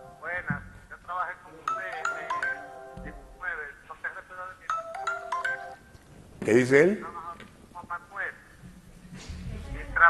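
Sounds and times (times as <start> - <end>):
phone ringtone marimba melody: 1.7 - 3.4, 4.7 - 5.9.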